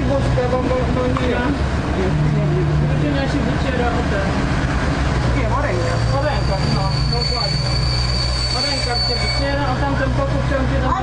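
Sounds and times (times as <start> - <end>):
heavy machinery diesel engine: 0.0 - 11.0
high-pitched squeal: 5.6 - 10.1.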